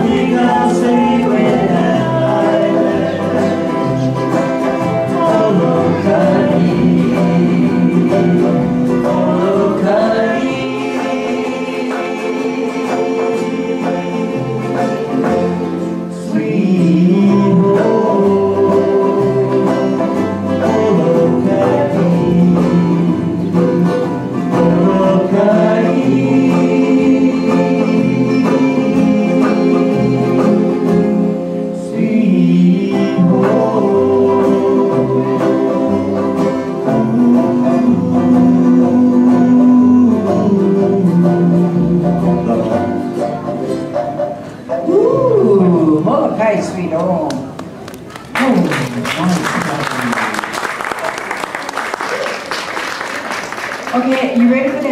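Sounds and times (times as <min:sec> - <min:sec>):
man singing: 0:00.0 - 0:43.2
small band playing live: 0:00.0 - 0:54.9.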